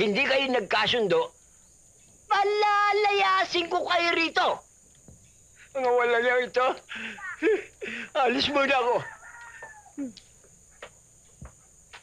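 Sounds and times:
rooster crowing: 0:08.9 - 0:10.0.

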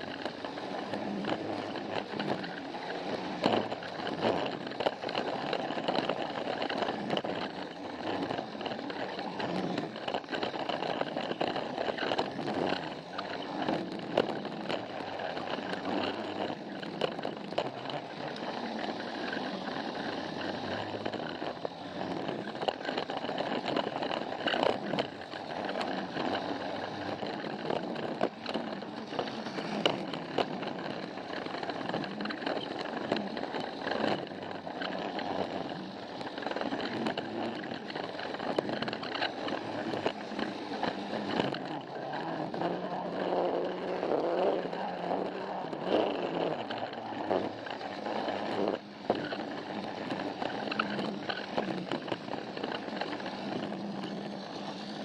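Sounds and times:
toy train motor whirring: 0:00.0 - 0:55.0
wheels clicking over track joints: 0:00.0 - 0:55.0.

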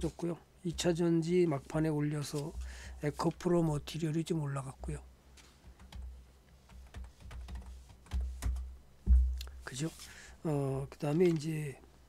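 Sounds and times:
computer keyboard typing: 0:05.6 - 0:06.1, 0:06.7 - 0:08.6.

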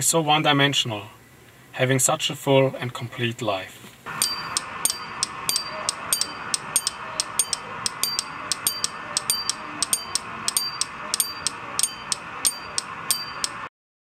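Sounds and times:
steady hiss: 0:03.4 - 0:13.7
sharp repeating clicks: 0:04.1 - 0:13.7.

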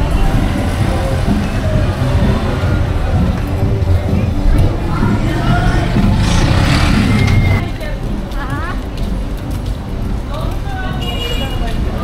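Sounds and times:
passersby voices: 0:00.0 - 0:12.0
traffic rumble: 0:00.0 - 0:12.0.

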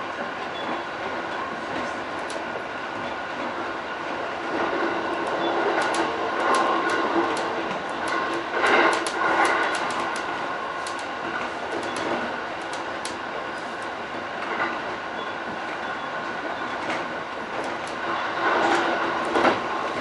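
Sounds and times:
train wheels rumbling on rail: 0:00.0 - 0:20.0
sharp clicks: 0:05.2 - 0:08.2, 0:08.9 - 0:11.1.

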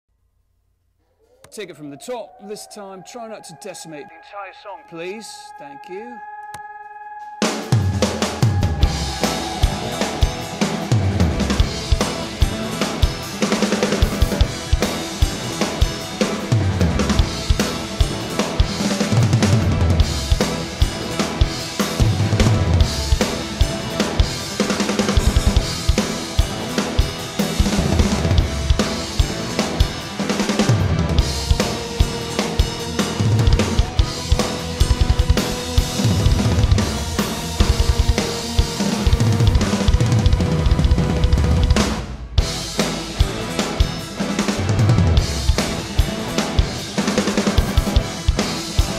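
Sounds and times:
sustained pitched instruments: 0:01.3 - 0:16.5
rock drum kit played fast: 0:07.6 - 0:48.9
bass drum: 0:33.2 - 0:43.4.

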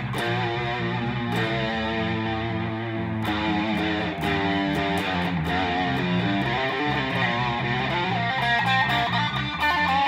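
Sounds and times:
bass line: 0:00.0 - 0:10.0
electric guitar blues lead: 0:00.0 - 0:10.0.

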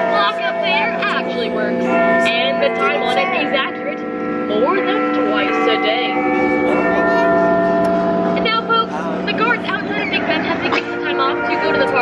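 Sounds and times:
clock bell chimes: 0:00.0 - 0:12.0.

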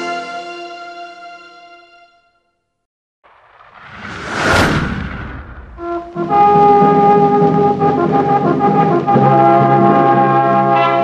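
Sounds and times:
brass chord: 0:06.2 - 0:11.0.

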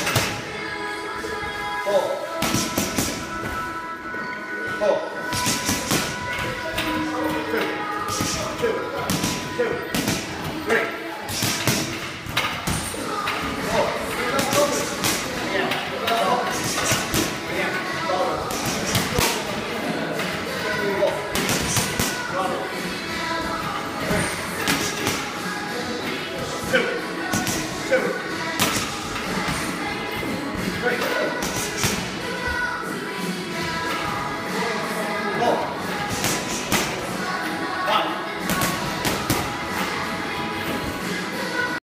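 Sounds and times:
background music: 0:00.0 - 0:41.8
voices: 0:00.0 - 0:41.8.

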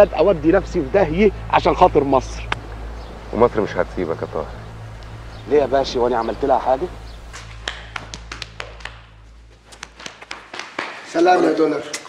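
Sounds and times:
low steady hum: 0:00.0 - 0:10.3
hands patting on backs: 0:07.3 - 0:11.1.

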